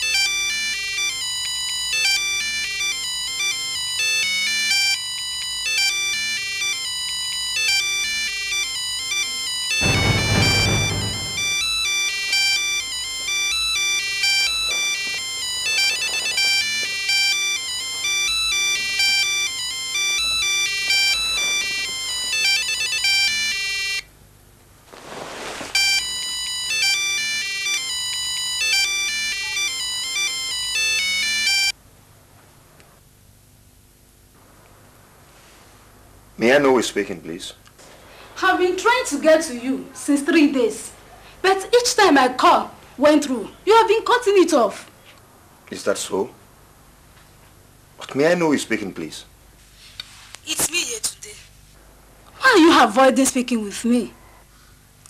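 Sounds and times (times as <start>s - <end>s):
phone ringtone melody: 0.0s - 24.0s, 25.8s - 31.8s
loud low rushing swell: 9.8s - 11.7s.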